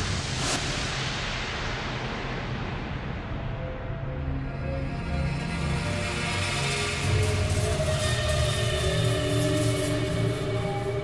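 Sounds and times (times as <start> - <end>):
low pulsing drone: 3.3 - 11.0.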